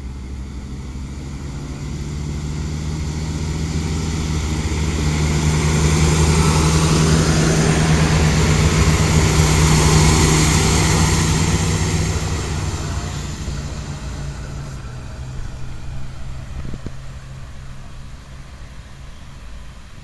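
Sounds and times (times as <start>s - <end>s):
diesel railcar engine drone: 0.0s - 20.0s
train wheels rolling on rails: 2.6s - 20.0s.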